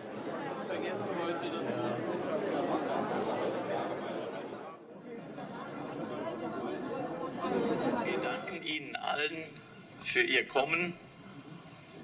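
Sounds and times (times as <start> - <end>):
crowd murmuring: 0.0 - 10.0.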